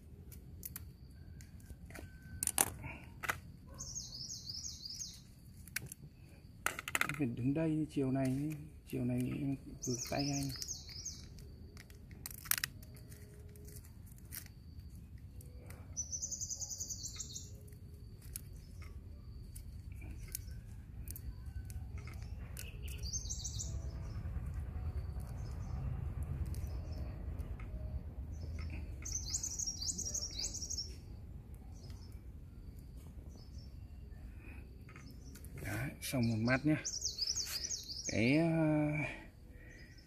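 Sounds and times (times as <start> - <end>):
songbird chirping: 0.0 - 40.0
low rumble: 18.0 - 30.4.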